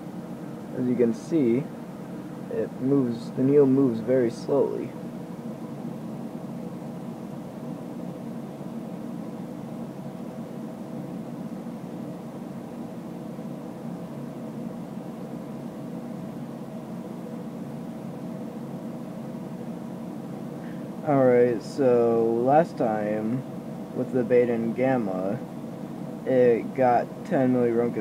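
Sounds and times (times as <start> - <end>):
room hum and hiss: 0.0 - 28.0.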